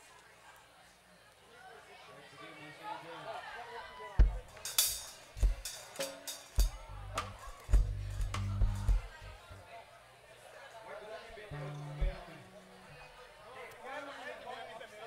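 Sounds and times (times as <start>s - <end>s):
kick drum hits: 4.2s - 4.5s
low bass notes: 6.6s - 9.6s, 11.5s - 13.1s.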